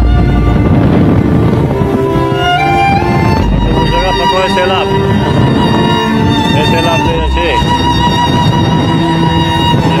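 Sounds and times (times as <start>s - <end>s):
bowed string melody: 0.0s - 10.0s
held steady tones: 0.0s - 10.0s.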